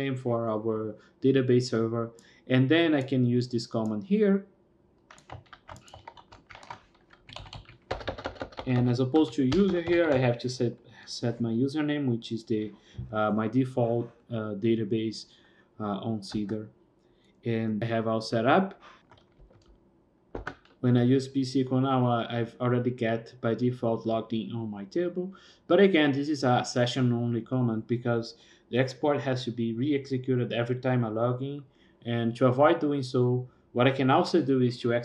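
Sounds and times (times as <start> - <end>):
keyboard typing: 5.1 - 10.4, 20.4 - 20.8.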